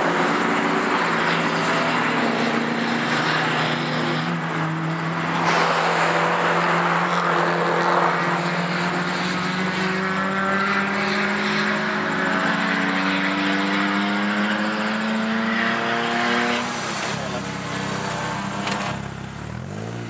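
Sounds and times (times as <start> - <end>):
car engine accelerating hard: 0.0 - 20.0.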